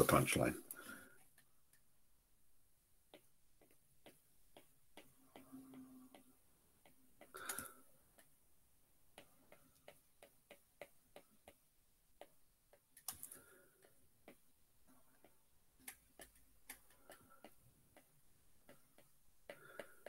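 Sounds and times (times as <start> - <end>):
stylus tapping glass screen: 3.0 - 8.4, 9.1 - 20.0.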